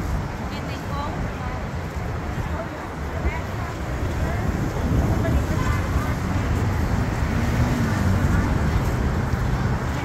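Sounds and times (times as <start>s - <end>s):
faint voices of passers-by: 0.0s - 10.0s
street traffic: 0.0s - 10.0s
wind rumble on microphone: 0.0s - 10.0s.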